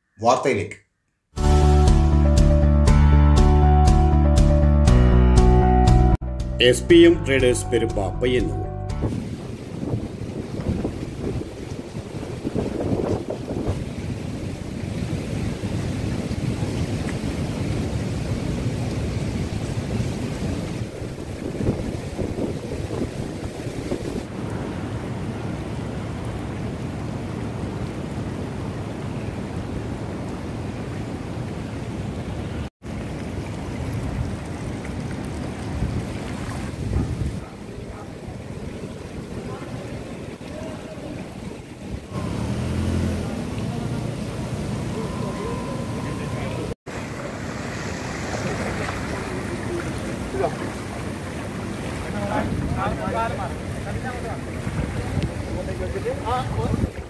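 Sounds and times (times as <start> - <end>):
wind rumbling on microphone: 9.0 - 31.2, 33.0 - 42.3, 46.6 - 57.0
seawater washing over ground: 9.1 - 31.5, 32.8 - 57.0.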